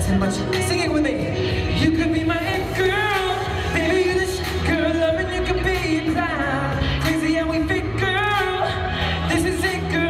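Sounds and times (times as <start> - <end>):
man singing into microphone: 0.0 - 10.0
pop backing track with bass: 0.0 - 10.0.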